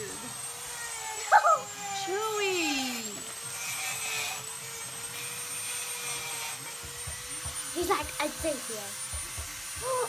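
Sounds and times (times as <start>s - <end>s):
small motor humming: 0.0s - 10.0s.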